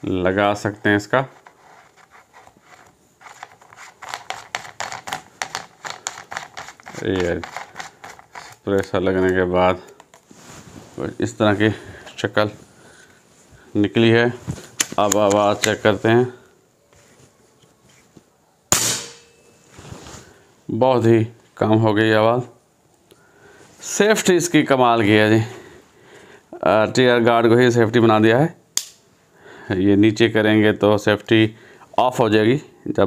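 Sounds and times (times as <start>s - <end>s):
small clicks and scrapes: 1.3s - 10.3s
air rifle shot: 18.7s - 19.3s.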